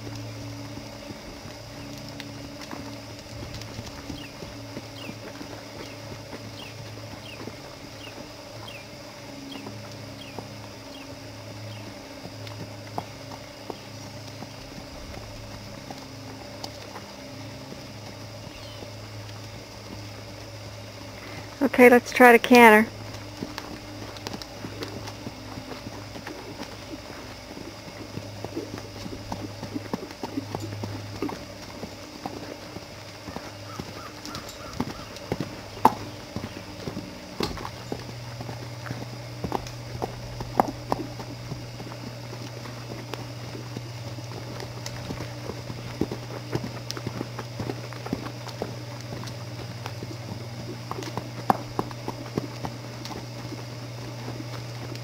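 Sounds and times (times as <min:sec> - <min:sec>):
horse hoofbeats on dirt: 0:00.0 - 0:55.0
low hum: 0:00.0 - 0:55.0.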